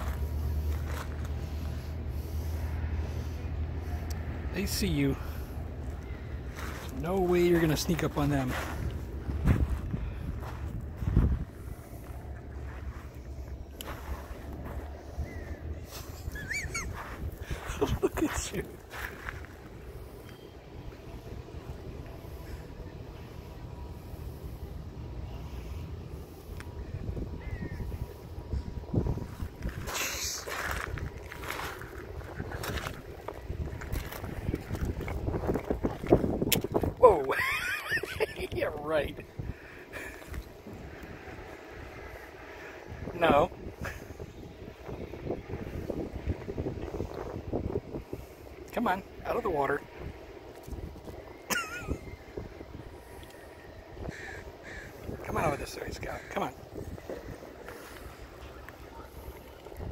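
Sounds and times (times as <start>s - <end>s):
wind buffeting microphone: 0.0s - 59.9s
footsteps on wet pebbles: 6.5s - 15.0s, 16.9s - 19.9s, 29.3s - 37.0s.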